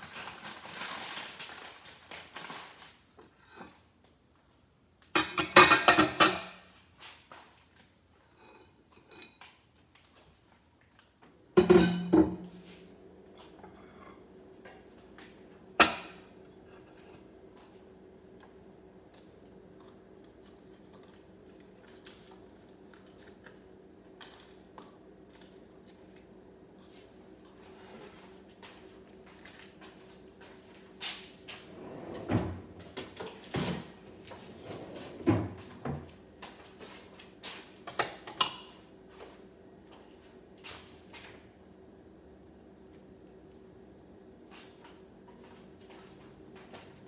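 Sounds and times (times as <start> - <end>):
faint steady hum: 0.0 - 47.0
dishes clattering on a counter: 5.1 - 6.7, 11.6 - 12.6, 15.8 - 16.3, 37.9 - 38.8.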